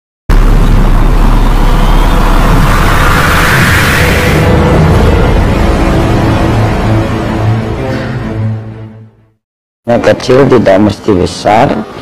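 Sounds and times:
cinematic rushing riser: 0.3 - 8.9.

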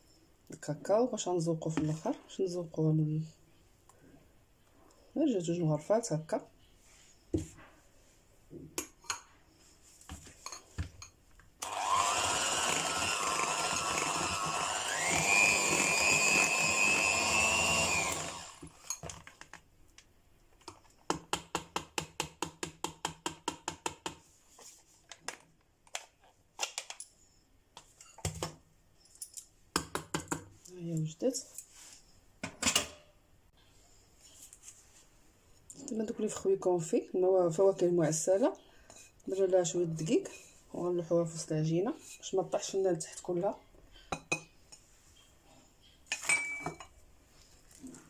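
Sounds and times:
electric hand mixer motor whine: 11.6 - 18.8.

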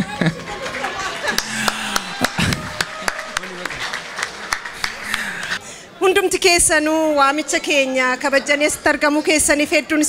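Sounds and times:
people laughing: 0.0 - 5.6
indistinct voices: 1.3 - 5.7.

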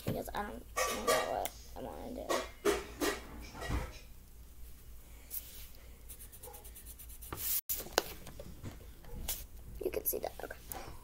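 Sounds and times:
felt-tip marker scratching paper: 6.1 - 7.6.

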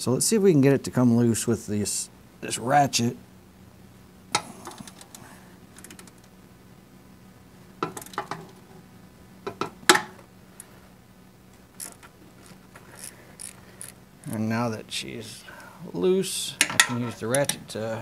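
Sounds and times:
ratchet wrench clicks: 11.8 - 14.0.

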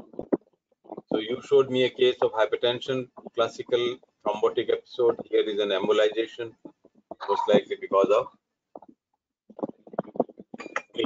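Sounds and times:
man lecturing: 1.2 - 6.6, 7.2 - 8.3.

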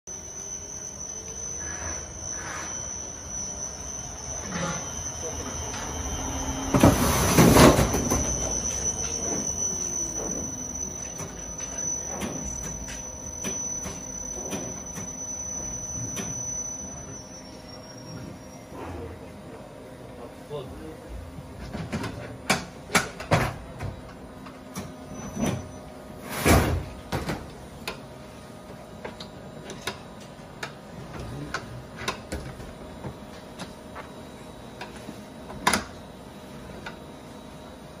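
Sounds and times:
laundry machinery running: 0.1 - 18.4
metallic squeals and knocks: 0.1 - 18.9, 24.8 - 26.8
steady high whine: 0.1 - 38.0.

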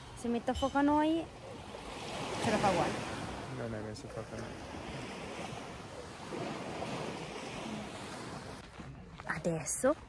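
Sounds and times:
waves washing onto beach: 0.0 - 9.8.

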